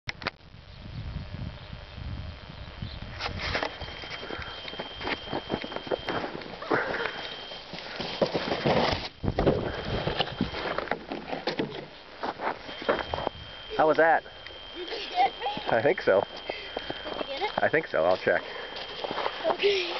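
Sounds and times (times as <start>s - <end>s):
plastic sled sliding on snow: 7.7s - 11.4s.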